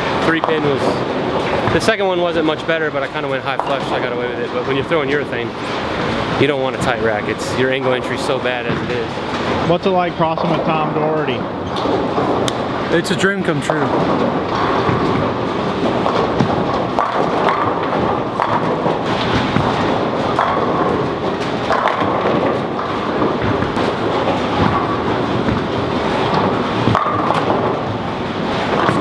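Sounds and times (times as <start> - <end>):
bowling balls rolling: 0.0 - 29.0
pins crashing: 13.7 - 29.0.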